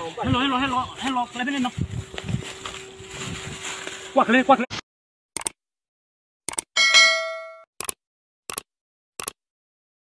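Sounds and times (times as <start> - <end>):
bright bell ding: 6.8 - 7.7.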